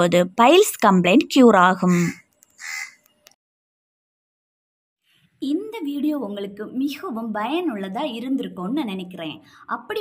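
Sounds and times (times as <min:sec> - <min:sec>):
woman speaking: 0:00.0 - 0:02.2, 0:05.4 - 0:10.0.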